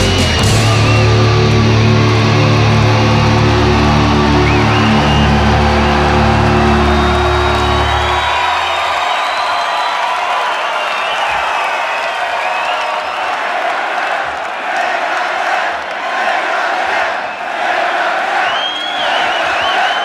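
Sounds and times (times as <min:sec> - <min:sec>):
heavy metal band playing: 0:00.0 - 0:08.6
crowd cheering and whistling: 0:00.0 - 0:20.0.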